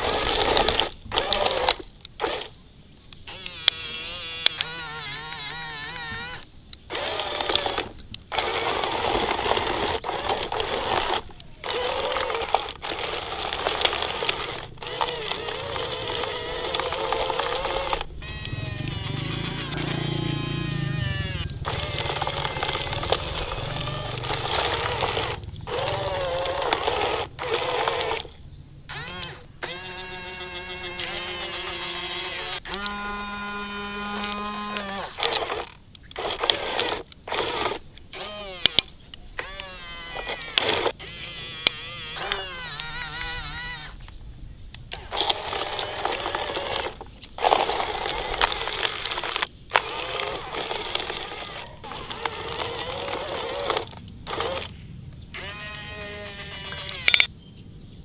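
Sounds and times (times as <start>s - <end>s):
electric motors whining: 0.0s - 44.2s, 44.8s - 57.3s.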